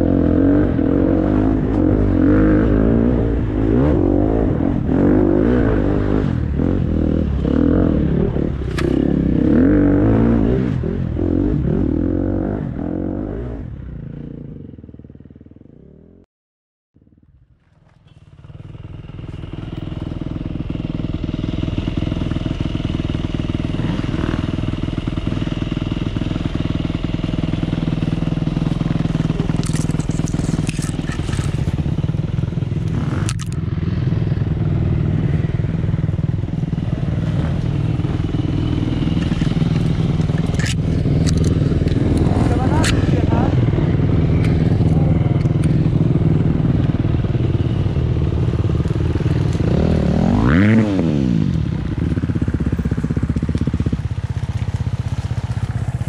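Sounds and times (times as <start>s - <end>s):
dirt bike engines running: 17.0s - 56.0s.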